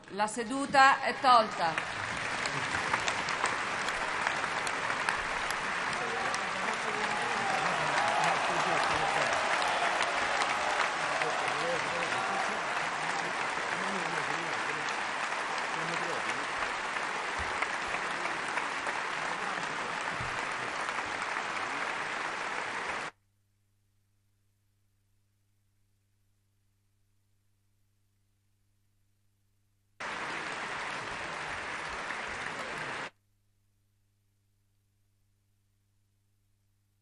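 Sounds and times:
large crowd applauding: 1.0 - 23.1, 30.0 - 33.1.

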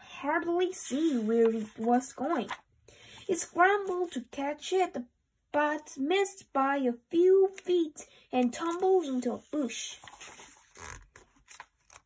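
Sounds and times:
book page turning: 0.8 - 4.3, 8.4 - 12.0.

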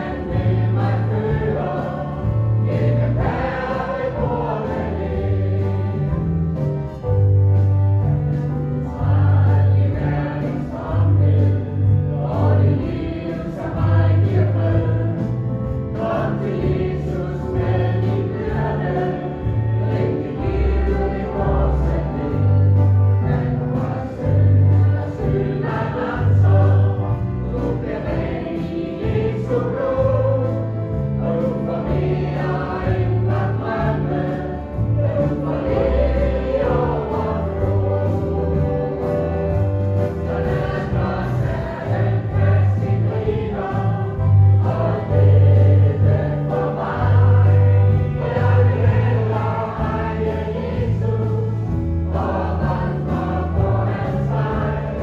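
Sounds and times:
choir singing gospel song: 0.0 - 55.0.

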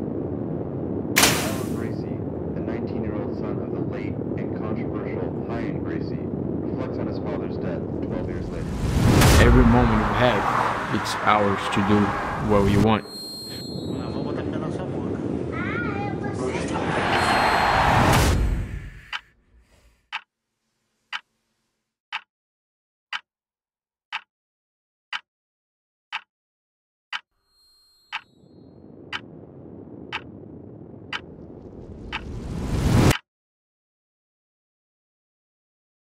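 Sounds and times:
low rumble: 0.0 - 13.0, 28.6 - 33.1
clock ticking: 29.1 - 29.3, 30.1 - 30.3.

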